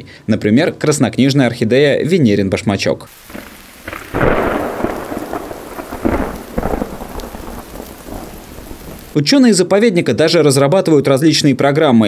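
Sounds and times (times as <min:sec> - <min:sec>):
rain falling in forest: 0:03.1 - 0:09.2.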